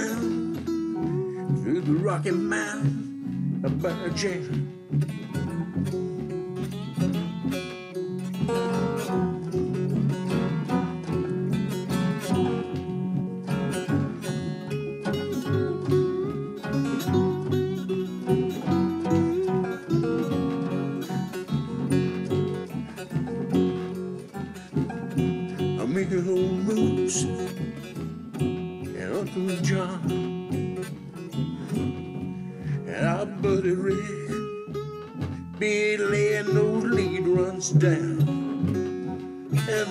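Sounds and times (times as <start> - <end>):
slide diddley bow lead: 0.0 - 39.9
strummed rhythm guitar: 0.0 - 39.9.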